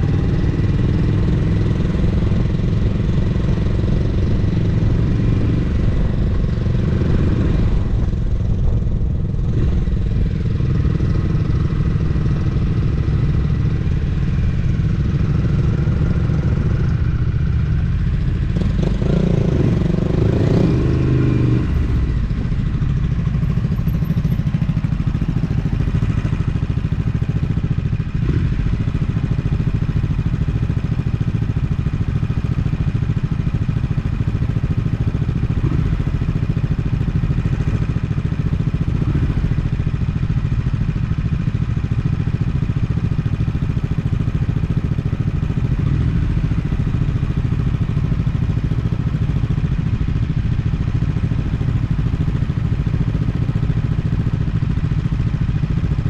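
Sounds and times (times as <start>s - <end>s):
motorcycle engine idling: 0.0s - 56.0s.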